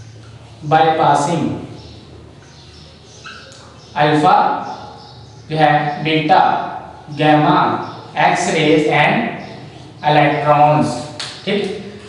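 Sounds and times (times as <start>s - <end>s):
marker squeaking on whiteboard: 1.8s - 4.0s.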